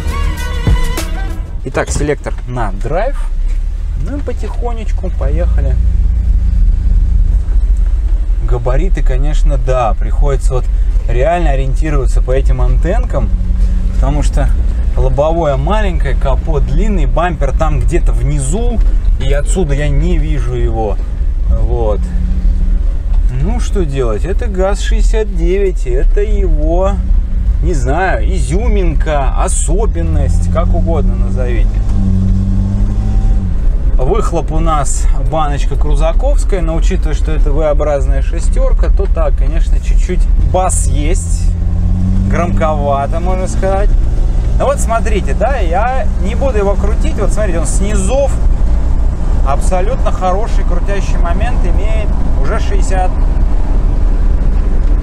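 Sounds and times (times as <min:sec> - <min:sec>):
engine rumble from inside cabin: 0:00.0 - 0:55.0.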